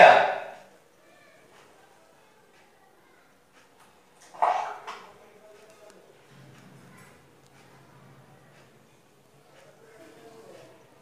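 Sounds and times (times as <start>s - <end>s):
dog barking: 4.4s - 4.8s.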